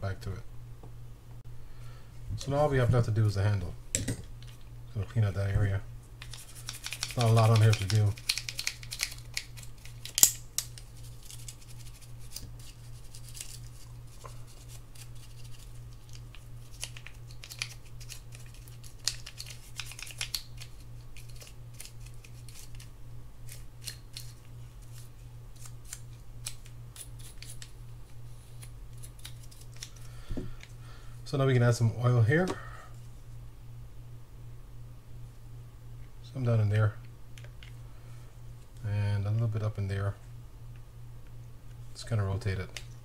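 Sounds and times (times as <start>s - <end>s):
toothbrush scrubbing metal: 6.2s - 9.4s.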